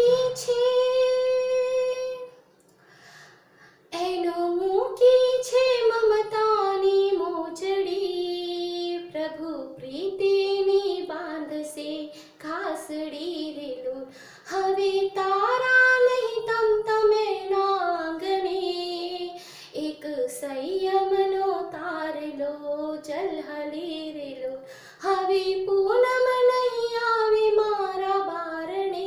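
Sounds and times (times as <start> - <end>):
woman singing unaccompanied: 0.0 - 2.3, 3.9 - 29.0.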